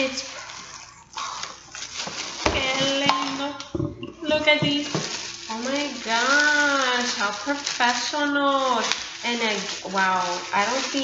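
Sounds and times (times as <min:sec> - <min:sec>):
plastic wrapping rustling: 0:00.0 - 0:11.0
person speaking: 0:02.5 - 0:11.0.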